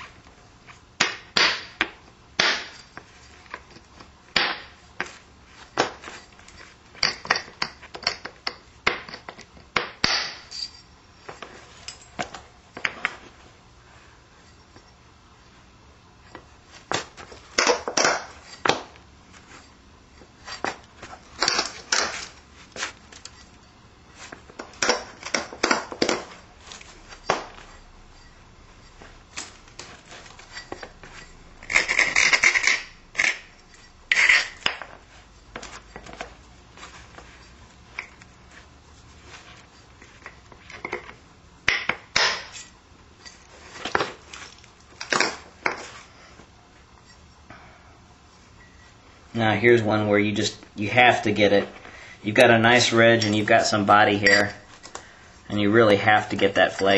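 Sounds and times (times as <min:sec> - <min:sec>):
stone knapping clicks and scrapes: 0:31.6 - 0:33.5, 0:34.1 - 0:34.9.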